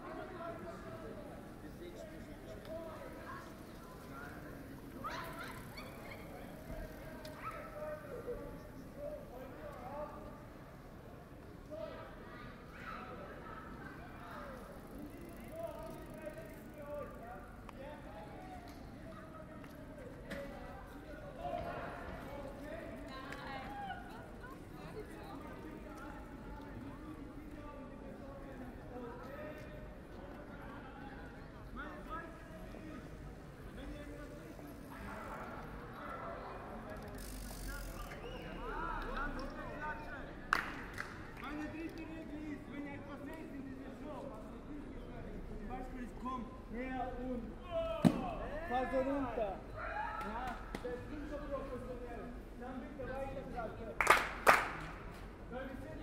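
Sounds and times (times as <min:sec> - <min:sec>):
city street hum: 0:00.0 - 0:49.8
passers-by talking: 0:00.0 - 0:56.0.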